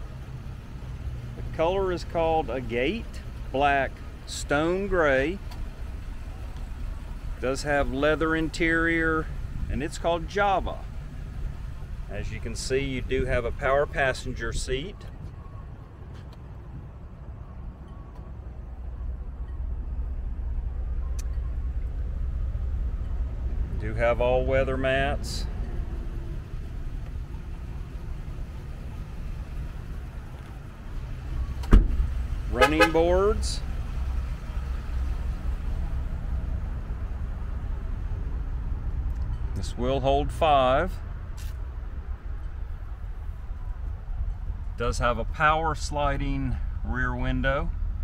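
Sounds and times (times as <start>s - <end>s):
low uneven rumble: 0.0s - 48.0s.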